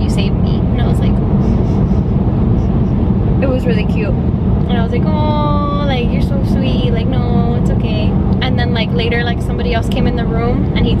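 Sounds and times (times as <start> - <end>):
car rumble from inside cabin: 0.0 - 11.0.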